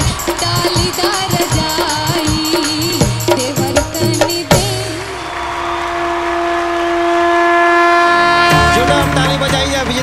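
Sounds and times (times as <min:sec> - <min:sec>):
applause: 0:00.0 - 0:10.0
audience noise: 0:00.0 - 0:10.0.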